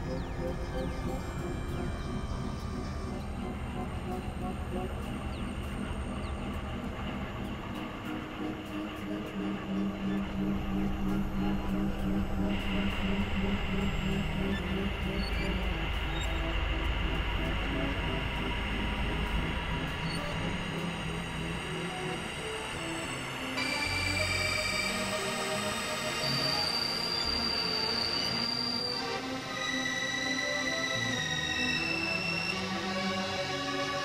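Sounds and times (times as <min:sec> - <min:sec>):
synthesizer drone and noise: 0:00.0 - 0:34.0.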